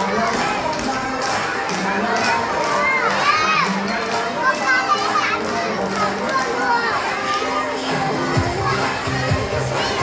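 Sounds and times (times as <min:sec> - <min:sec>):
children shouting: 0:00.0 - 0:10.0
dance music over loudspeaker: 0:00.0 - 0:10.0.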